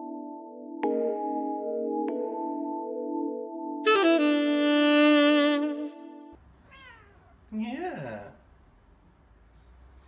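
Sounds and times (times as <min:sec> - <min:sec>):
background music chord: 0:00.0 - 0:06.4
cat meowing: 0:06.6 - 0:07.4.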